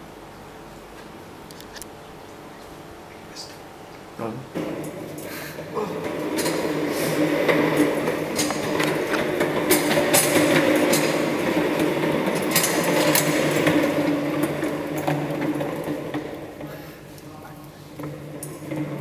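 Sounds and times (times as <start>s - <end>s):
chair wheels rolling on tiles: 4.6s - 19.0s.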